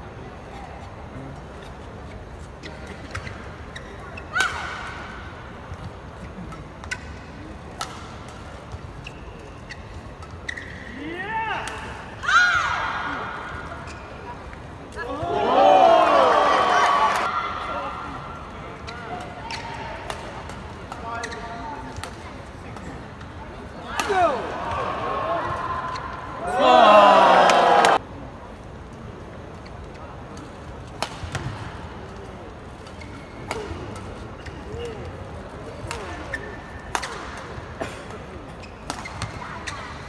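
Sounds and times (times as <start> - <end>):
shoes squeaking on court: 1.6 - 4.4, 8.6 - 11.0, 38.5 - 40.0
racquet striking shuttlecock: 7.7 - 8.4, 36.9 - 37.5.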